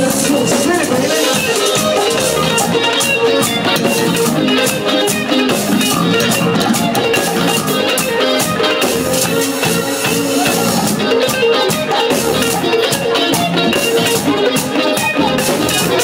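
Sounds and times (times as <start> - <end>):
live dance band playing: 0.0 - 16.0.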